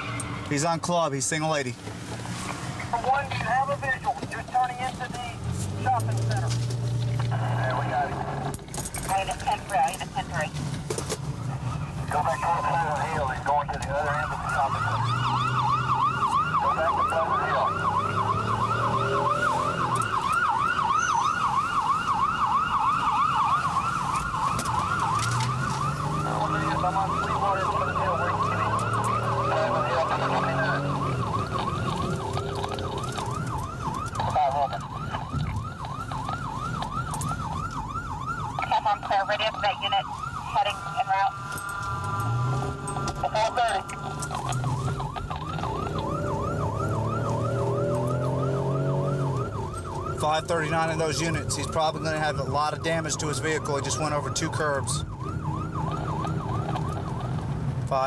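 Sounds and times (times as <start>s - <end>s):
car engine revving: 1.9s - 21.6s, 24.5s - 37.5s, 40.3s - 58.0s
police siren yelping: 11.4s - 58.0s.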